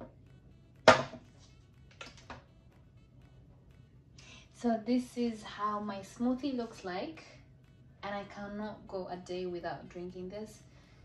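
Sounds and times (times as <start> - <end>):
glass knocks on glass tabletop: 0.9 - 1.2.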